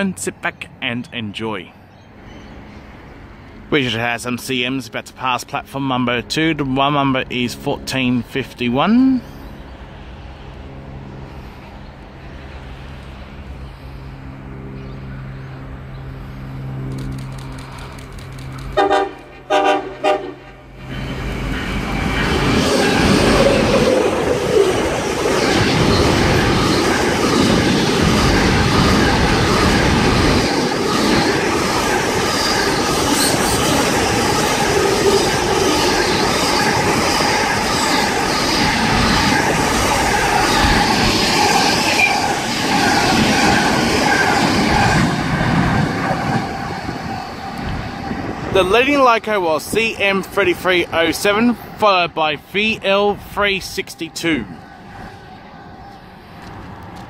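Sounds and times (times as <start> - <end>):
train wheels rolling: 16.9 - 51.5
locomotive horn blasts: 18.8 - 20.8.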